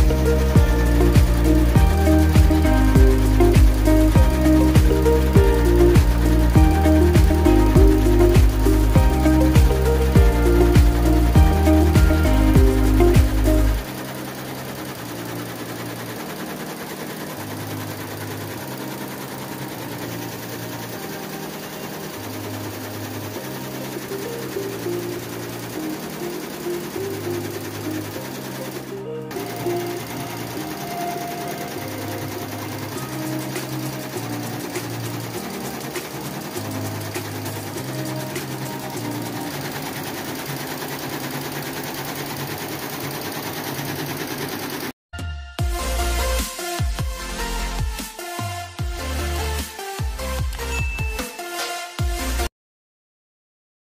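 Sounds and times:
background music: 0.0 - 42.2, 45.2 - 52.5
embroidery machine needle clatter: 0.0 - 44.9.

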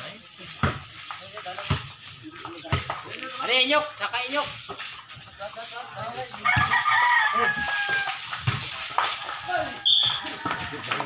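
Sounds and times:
basketball dribbling thuds: 0.5 - 3.1, 7.9 - 8.8
crowd voices: 5.1 - 11.0
rooster crowing: 6.4 - 8.2.

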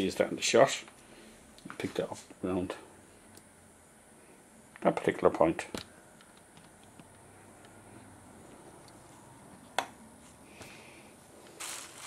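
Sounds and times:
soft rustle: 11.4 - 12.0.

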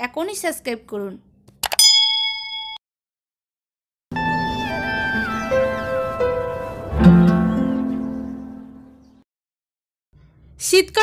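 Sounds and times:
bright bell-like ding: 1.8 - 2.8.

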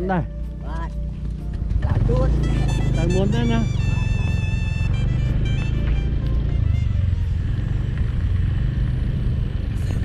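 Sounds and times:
small motorcycle engine revving: 1.8 - 6.2.

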